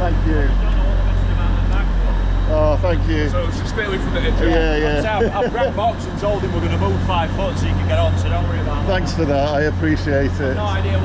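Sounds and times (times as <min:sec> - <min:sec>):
train humming: 0:00.0 - 0:11.0
voices: 0:00.0 - 0:11.0.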